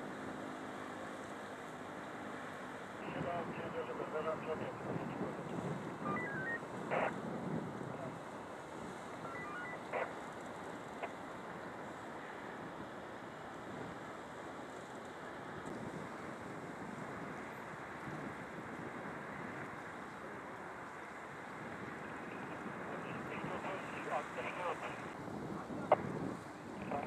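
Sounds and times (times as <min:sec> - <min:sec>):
wind on microphone: 0:04.5 - 0:08.2, 0:24.8 - 0:27.0.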